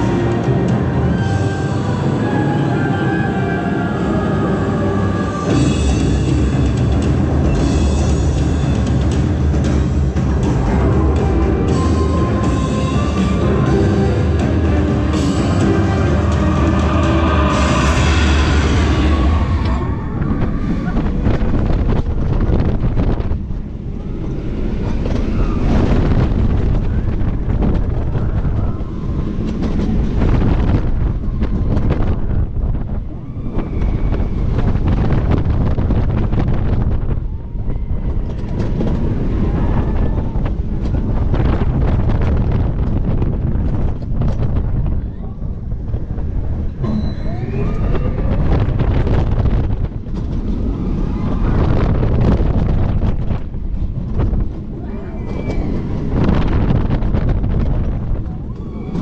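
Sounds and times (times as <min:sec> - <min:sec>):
ride soundtrack music: 0:00.0 - 0:33.6
roller coaster train rumbling: 0:00.0 - 0:59.0
wind rushing on microphone: 0:00.0 - 0:59.0.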